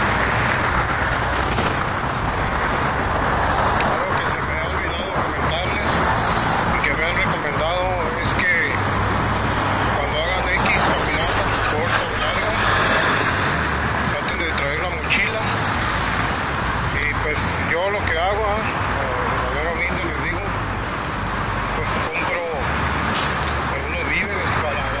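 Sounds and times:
road traffic passing close: 0.0 - 25.0.

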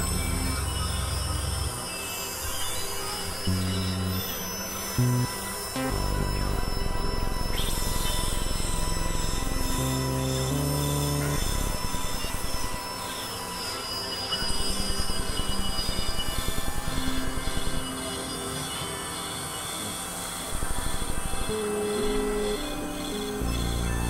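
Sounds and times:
electronic synthesizer music: 0.0 - 24.0.

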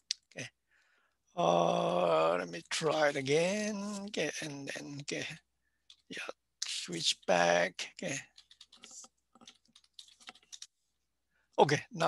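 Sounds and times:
computer keyboard keystrokes: 8.3 - 10.7.

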